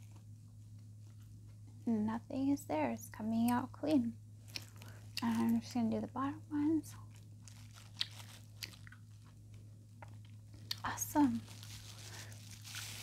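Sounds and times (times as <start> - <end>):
plastic gloves crinkling: 0.0 - 1.9, 4.4 - 13.0
steady low hum: 0.0 - 13.0.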